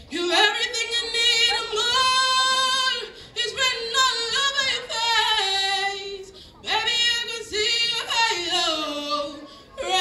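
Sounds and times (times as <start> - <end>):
woman singing into microphone: 0.0 - 10.0.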